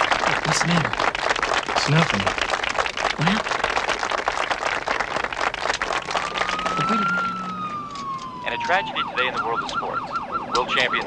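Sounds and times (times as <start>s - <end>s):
people applauding: 0.0s - 9.8s
siren rising in pitch: 5.9s - 11.0s.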